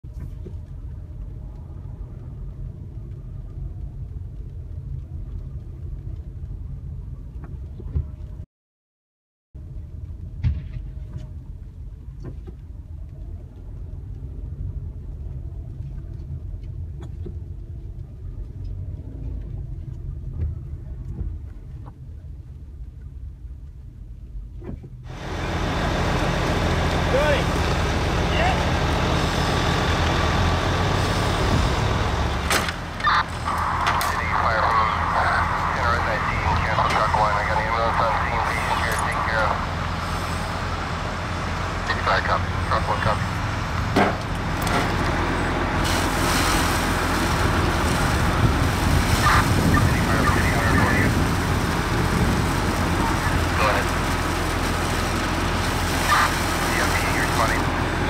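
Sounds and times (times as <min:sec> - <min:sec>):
vehicle engine running: 0:25.0 - 0:58.0
voices talking: 0:25.2 - 0:58.0.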